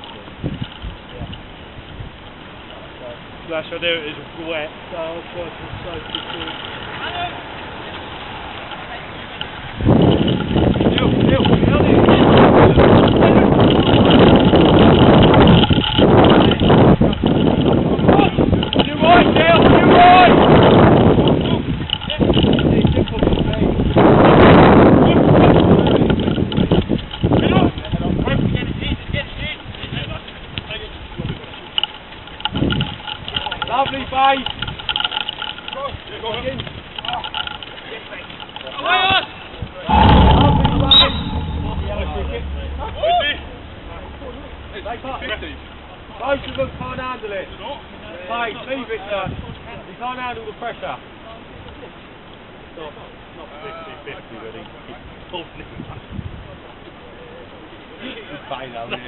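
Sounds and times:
wind rumbling on microphone: 0:00.0 - 0:03.5, 0:05.3 - 0:50.0, 0:55.1 - 0:56.8
loud low rumble on microphone: 0:39.9 - 0:48.3.

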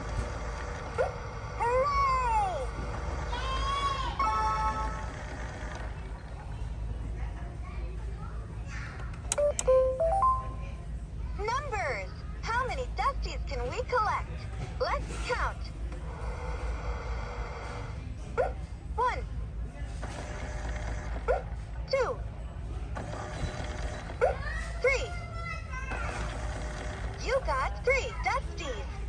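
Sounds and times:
toy recorded voice counting: 0:01.6 - 0:02.7
toy button clicks: 0:09.3 - 0:10.4
short electronic beep tones: 0:09.4 - 0:10.6.

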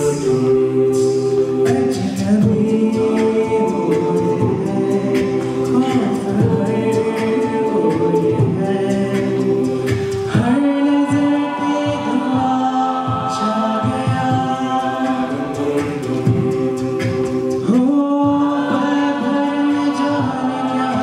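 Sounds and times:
group singing sustained chords: 0:00.0 - 0:21.0
male lead voice singing: 0:01.6 - 0:21.0.

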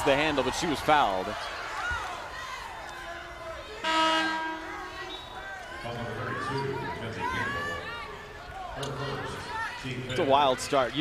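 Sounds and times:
arena horn blast: 0:03.8 - 0:05.1.

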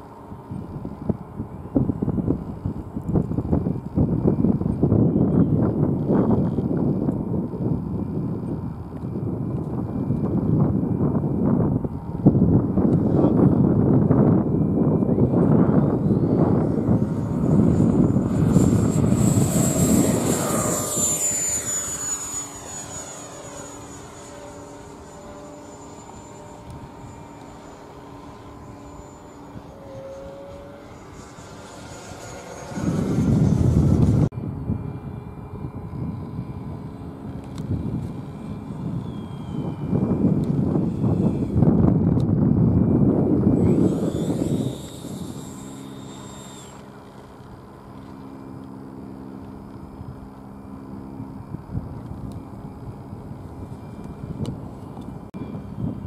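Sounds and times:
model jet ducted fan whine: 0:00.0 - 0:56.0.

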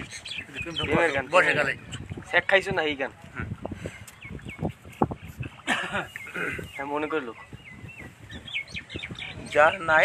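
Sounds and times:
bird chirping: 0:00.0 - 0:02.2, 0:04.1 - 0:10.0.

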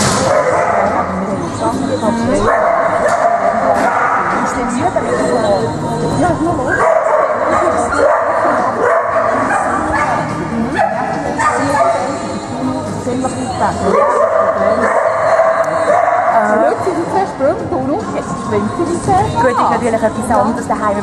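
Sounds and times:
dogs barking: 0:00.0 - 0:01.4, 0:02.0 - 0:05.6, 0:06.7 - 0:12.4, 0:13.8 - 0:16.9
background voices: 0:00.0 - 0:21.0
music: 0:00.0 - 0:21.0.

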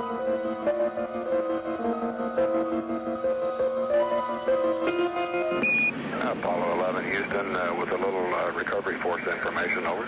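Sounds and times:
short high beep: 0:05.6 - 0:06.0
hissy radio voice: 0:06.1 - 0:10.0.

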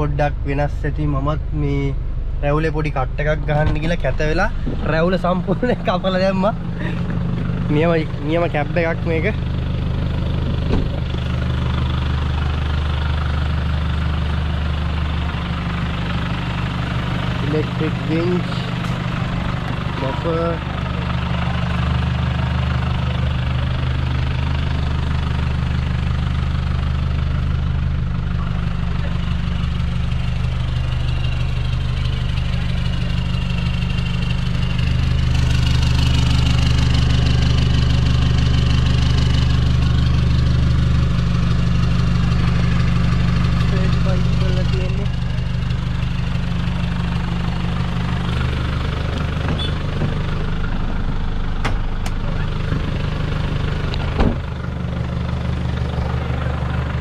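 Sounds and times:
truck engine idling: 0:00.0 - 0:57.0.

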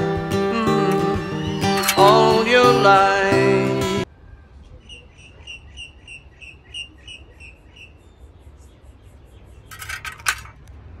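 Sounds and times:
metallic clatter: 0:09.7 - 0:10.7.

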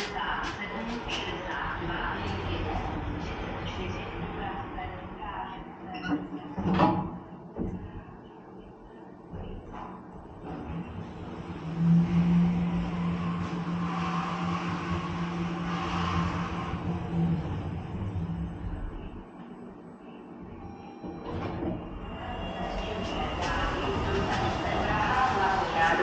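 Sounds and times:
lift hum: 0:07.2 - 0:26.0.

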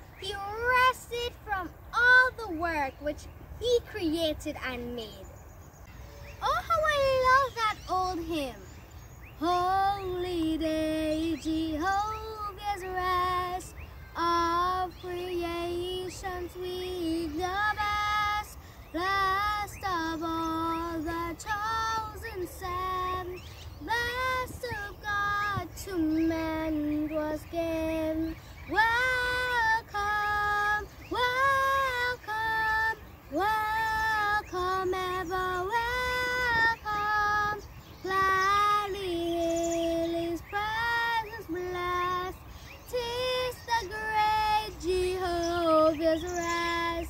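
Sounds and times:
girl singing a hymn: 0:00.0 - 0:05.4, 0:06.3 - 0:47.0.

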